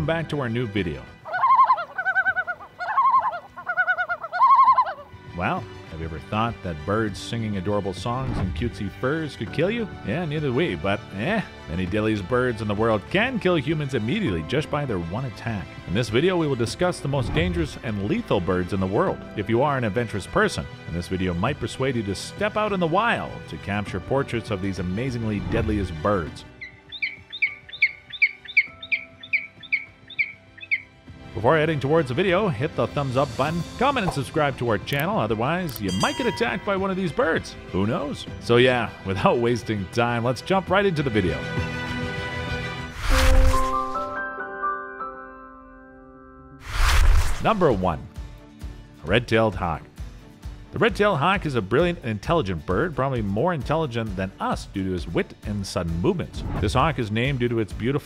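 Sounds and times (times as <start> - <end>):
soft background music: 0.0 - 58.0
loon tremolo calls: 1.2 - 5.1, 26.6 - 30.9.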